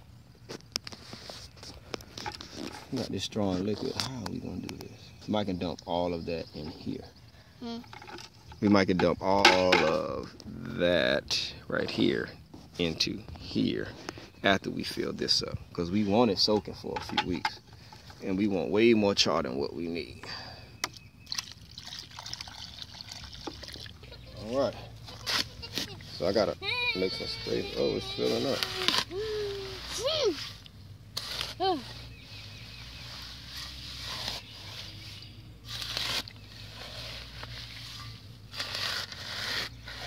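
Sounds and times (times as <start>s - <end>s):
bubbles crackling and popping: 21.3s - 24.0s
liquid pouring and splashing: 21.3s - 24.0s.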